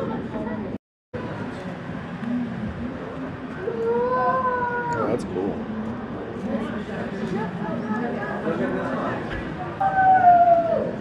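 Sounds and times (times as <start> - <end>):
murmur of a busy hall: 0.0 - 11.0.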